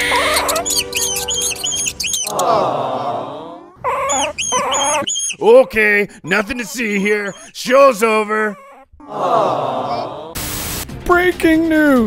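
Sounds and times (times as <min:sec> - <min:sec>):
rapid high-pitched squeaks: 0:00.1 - 0:02.4, 0:03.9 - 0:05.5.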